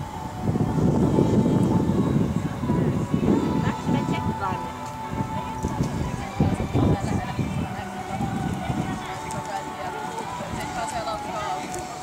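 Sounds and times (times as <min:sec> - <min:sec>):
background voices talking: 0:00.0 - 0:12.0.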